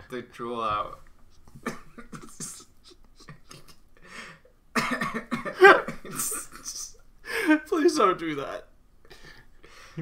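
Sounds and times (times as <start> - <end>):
man laughing and coughing: 1.5 - 4.0, 4.7 - 7.7.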